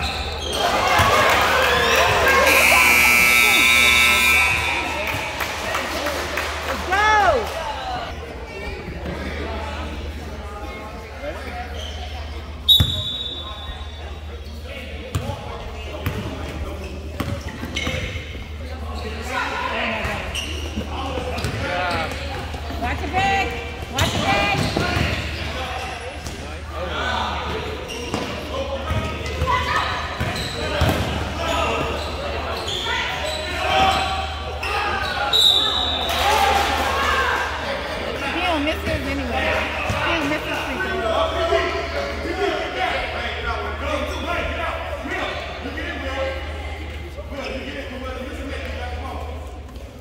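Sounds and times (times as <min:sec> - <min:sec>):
referee's whistle: 0:02.2 - 0:05.1, 0:12.7 - 0:14.0, 0:35.0 - 0:36.2.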